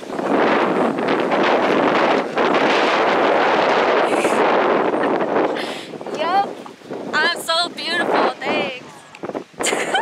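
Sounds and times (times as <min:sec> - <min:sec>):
wind blowing across microphone: 0:00.0 - 0:10.0.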